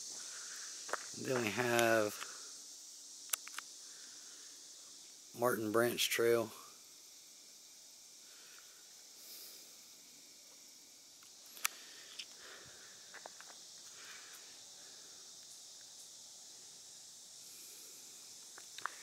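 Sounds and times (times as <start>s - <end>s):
faint high hiss: 0.0s - 19.0s
soft ticks and crunches: 0.8s - 2.4s, 3.2s - 3.7s, 10.5s - 14.5s, 18.4s - 19.0s
sharp click: 3.3s - 3.7s.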